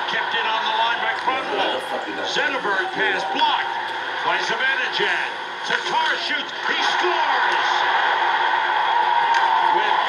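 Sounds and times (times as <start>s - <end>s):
man commentating: 0.0s - 7.9s.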